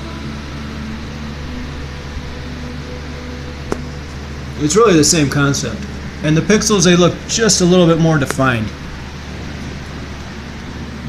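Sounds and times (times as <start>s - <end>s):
fan rushing: 0.0s - 11.0s
low hum: 0.0s - 11.0s.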